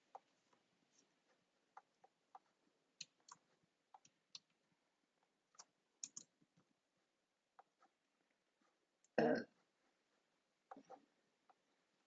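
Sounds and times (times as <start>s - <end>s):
keyboard and mouse clicks: 1.8s - 4.6s, 5.5s - 6.4s.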